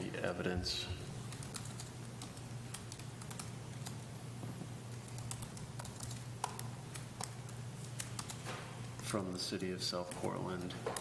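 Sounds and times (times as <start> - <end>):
steady low hum: 0.0 - 11.0
keyboard typing: 1.2 - 4.1, 4.9 - 8.4.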